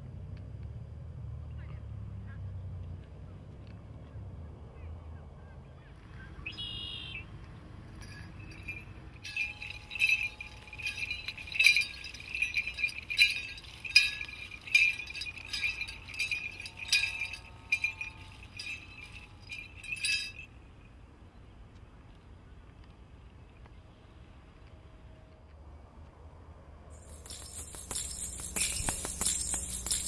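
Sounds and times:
bells jingling with steps: 7.9s - 20.5s, 27.0s - 30.0s.

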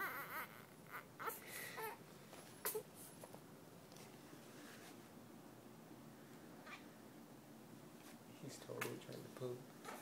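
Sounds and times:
newborn baby whimpering: 0.0s - 2.0s, 2.6s - 2.9s.

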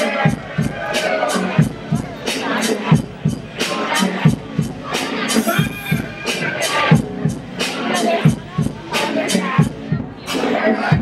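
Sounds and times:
hip hop beat: 0.0s - 11.0s
voices: 0.0s - 11.0s.

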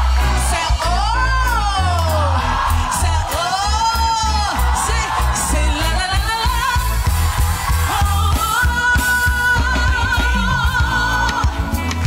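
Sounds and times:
live band with heavy bass: 0.0s - 12.0s
woman singing: 0.0s - 12.0s.

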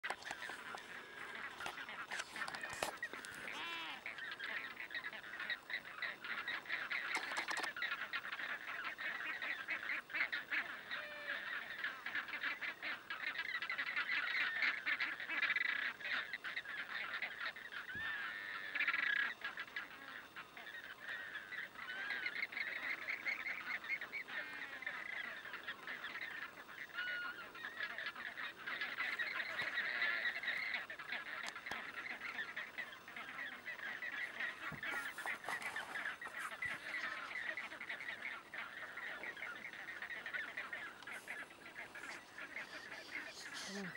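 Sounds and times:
flamingos honking: 0.0s - 43.9s.

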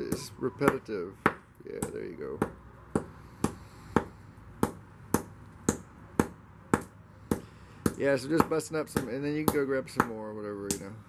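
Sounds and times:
hammer crushing shells on concrete: 0.1s - 11.0s.

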